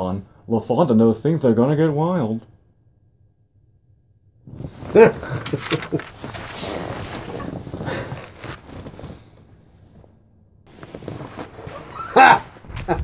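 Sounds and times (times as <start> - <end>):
rustling on leather couch: 4.5 - 13.0.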